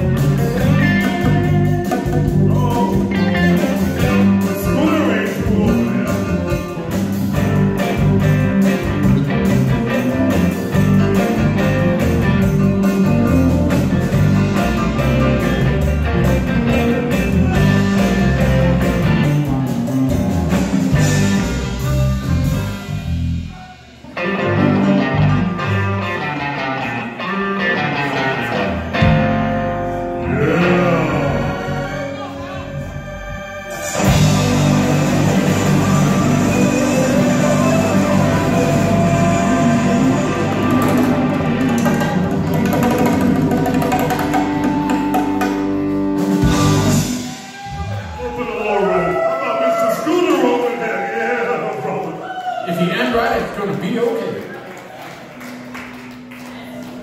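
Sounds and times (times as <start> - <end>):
blues band playing: 0.0 - 57.0.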